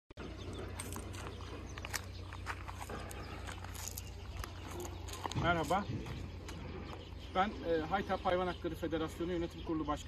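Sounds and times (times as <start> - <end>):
steady low hum: 0.2 - 9.5
stones crunching underfoot: 0.4 - 6.6.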